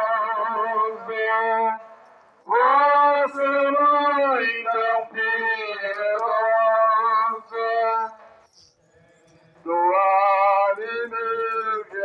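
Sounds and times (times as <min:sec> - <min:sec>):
hymn singing: 0:00.0 - 0:12.0.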